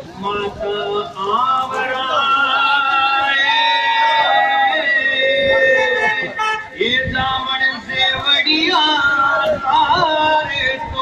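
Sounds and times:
person singing folk song: 0.0s - 11.0s.

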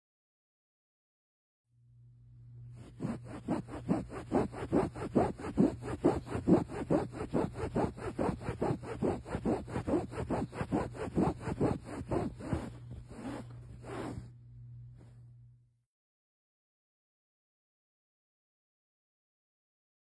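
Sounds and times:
low steady hum: 1.8s - 15.8s
cloth scrubbing upholstery fabric: 2.8s - 14.3s.

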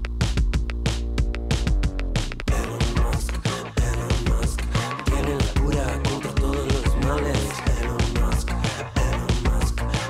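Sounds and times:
music with beat and strong bass: 0.0s - 10.0s.

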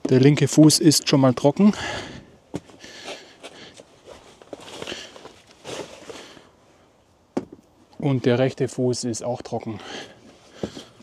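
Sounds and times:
shuffling steps on paving stones: 1.8s - 6.5s, 10.2s - 11.0s.

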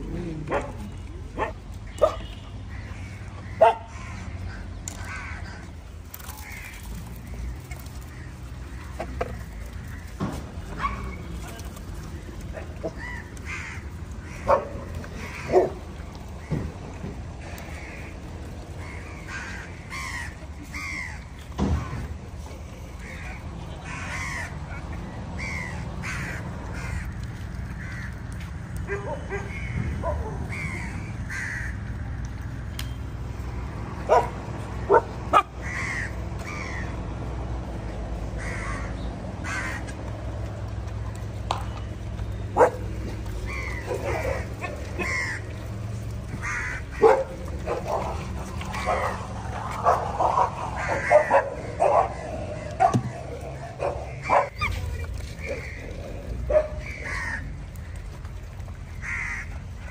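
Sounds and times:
crows cawing: 2.7s - 10.4s, 12.0s - 16.7s, 17.4s - 22.1s, 23.0s - 32.4s, 35.4s - 37.0s, 38.2s - 40.1s, 43.3s - 54.7s, 55.4s - 59.9s.

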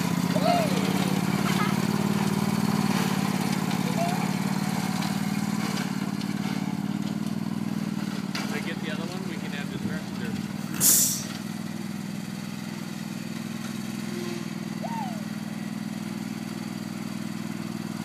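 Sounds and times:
riding lawn mower engine: 0.0s - 18.0s
loud hiss: 10.8s - 11.3s.

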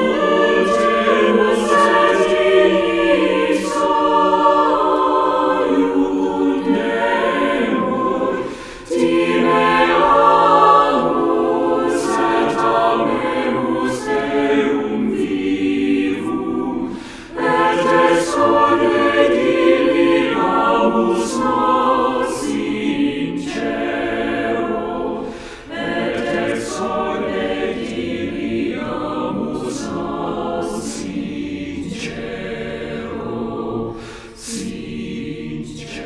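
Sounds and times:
church choir singing: 0.0s - 36.0s.

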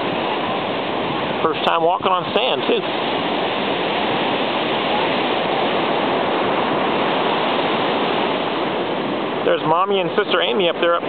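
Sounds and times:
ocean waves breaking: 0.0s - 11.0s.

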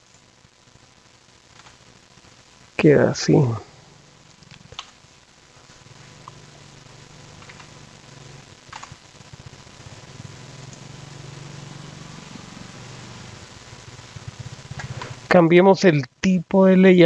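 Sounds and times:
faint hiss: 0.0s - 17.0s
low steady hum: 0.0s - 17.0s.

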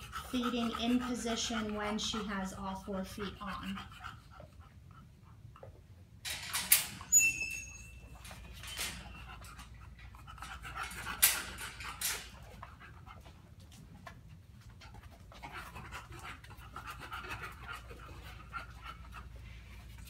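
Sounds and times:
dog panting: 0.0s - 5.9s, 8.2s - 20.0s.

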